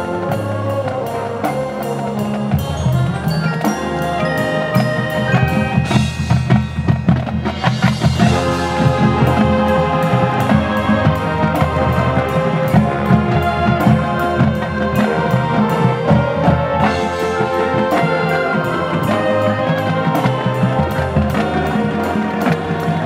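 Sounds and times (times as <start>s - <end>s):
marching band playing: 0.0s - 23.0s
rapid drum strokes: 0.0s - 23.0s.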